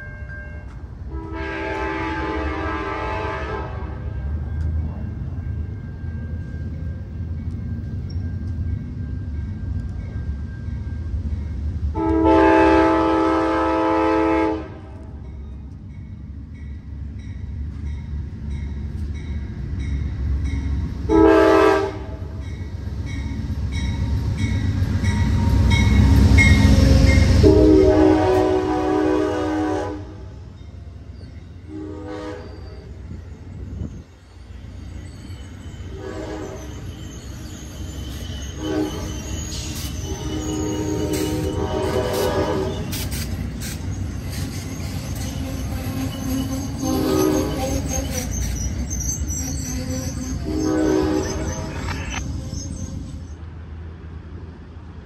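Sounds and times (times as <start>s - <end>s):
locomotive air horn blasts: 0.0s - 4.1s, 11.9s - 15.0s, 21.1s - 22.3s, 27.4s - 30.2s, 31.7s - 32.7s, 35.9s - 36.7s, 38.5s - 39.2s, 40.1s - 43.0s, 45.4s - 48.2s, 49.8s - 51.9s
passing train rumble: 0.0s - 55.0s.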